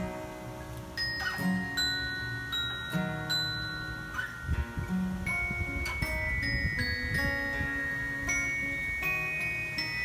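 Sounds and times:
glockenspiel notes ringing: 0.0 - 10.0
strummed acoustic guitar: 0.0 - 10.0.

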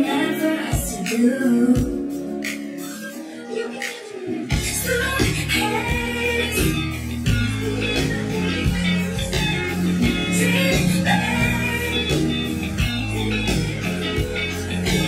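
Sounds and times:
electric guitar: 0.0 - 15.0
live rock band playing: 4.4 - 15.0.

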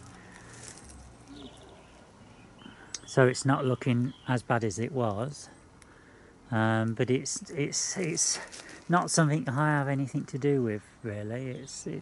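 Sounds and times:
faint bird calls: 0.0 - 4.4.

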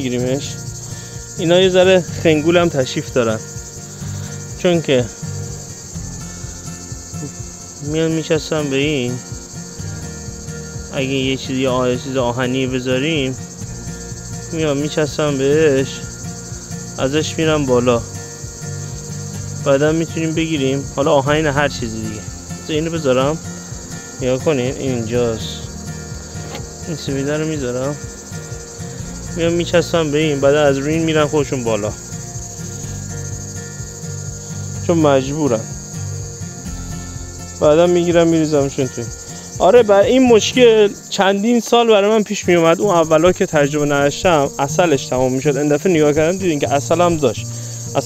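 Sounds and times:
insects chirring: 0.0 - 48.0.

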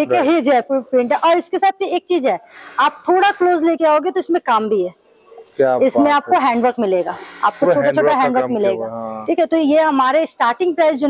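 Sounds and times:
person speaking: 0.0 - 1.9, 5.2 - 10.3.

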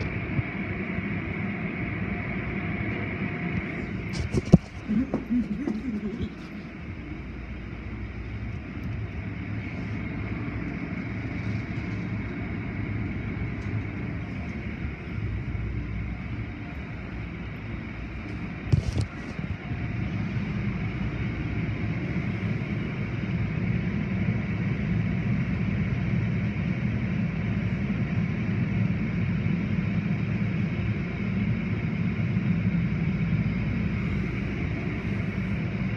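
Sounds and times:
car wash rumble and water rush: 0.0 - 35.9.

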